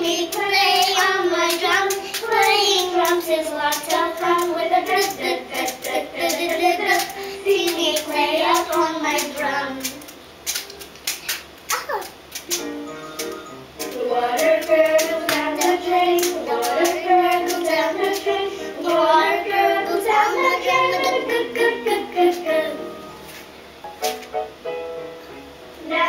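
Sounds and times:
child singing: 0:00.0 - 0:10.1, 0:13.9 - 0:22.9.

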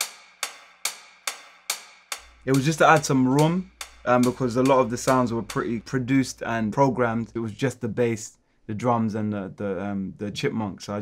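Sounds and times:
crisp hi-hat hits: 0:00.0 - 0:07.7.

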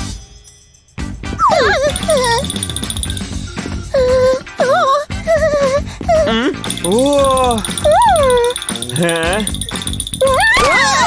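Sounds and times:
background music: 0:00.0 - 0:11.0
whimper-like vocal whine: 0:01.4 - 0:08.7, 0:10.2 - 0:11.0.

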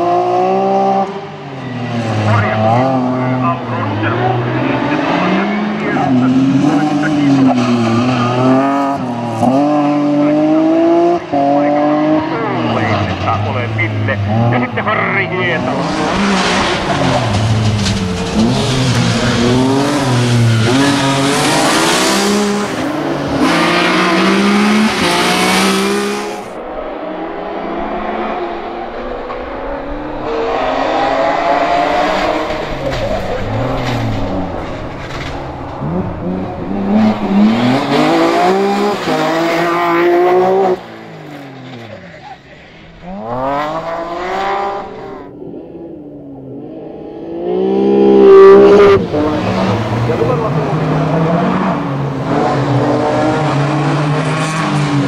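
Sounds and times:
rally car engines accelerating: 0:00.0 - 0:55.0.

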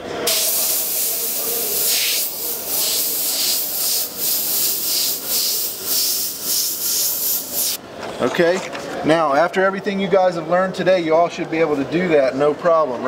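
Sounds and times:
airbrush spraying hiss: 0:00.3 - 0:07.8.

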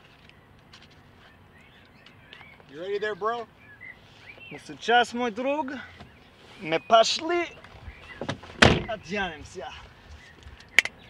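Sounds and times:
car door slamming: 0:08.2 - 0:09.1.

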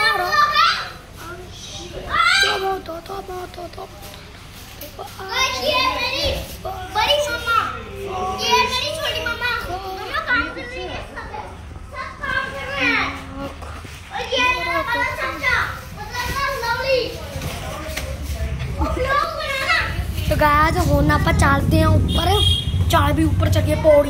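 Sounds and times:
children talking and calling out: 0:00.0 - 0:24.0.

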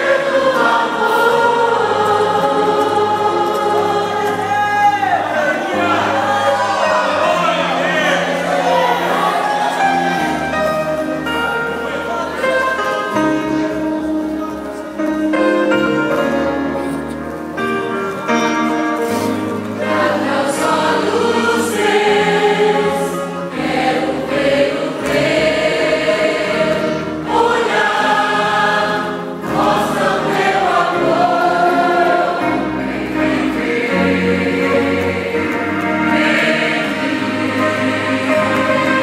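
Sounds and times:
mixed choir singing a hymn: 0:00.0 - 0:17.0, 0:17.6 - 0:39.0.

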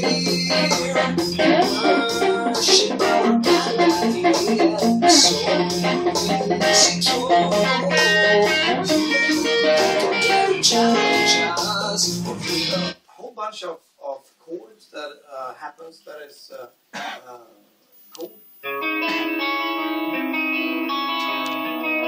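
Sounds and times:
electric guitar playing: 0:00.0 - 0:13.0, 0:18.6 - 0:22.0.

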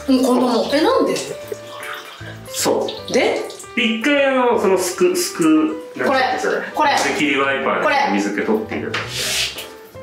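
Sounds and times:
light background music: 0:00.0 - 0:10.0
shower water splashing: 0:00.0 - 0:10.0.

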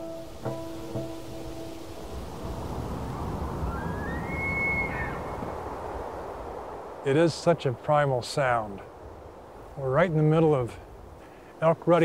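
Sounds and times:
low background rush: 0:00.0 - 0:12.0
elk bugling: 0:03.7 - 0:05.6.

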